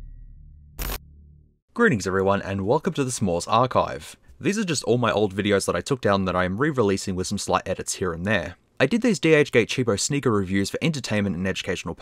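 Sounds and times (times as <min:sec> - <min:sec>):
sharp shutter-like click: 0:00.8 - 0:01.0
man speaking: 0:01.8 - 0:12.0.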